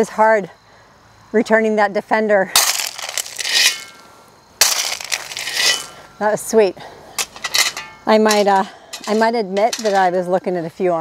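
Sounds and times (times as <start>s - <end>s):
shovel scraping into gravel: 2.6s - 6.1s, 7.2s - 10.1s.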